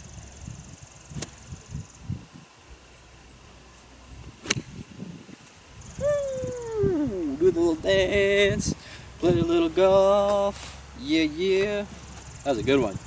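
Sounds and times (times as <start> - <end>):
golf iron striking ball: 1.2 - 1.4, 4.4 - 4.8.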